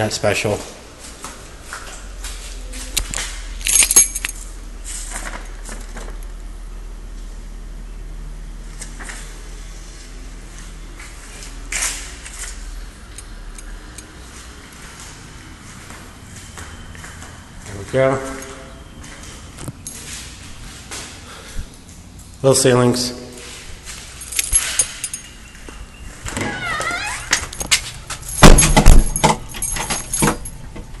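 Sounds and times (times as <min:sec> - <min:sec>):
rattling clicks and knocks: 0:27.5 - 0:31.0.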